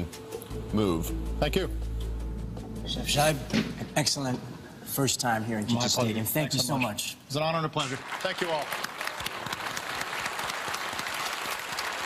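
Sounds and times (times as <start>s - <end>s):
hands clapping: 7.8s - 12.0s.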